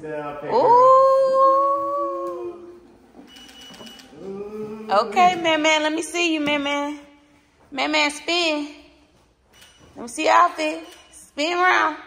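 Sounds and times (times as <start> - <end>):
person's high-pitched ooh: 0.5 - 2.8.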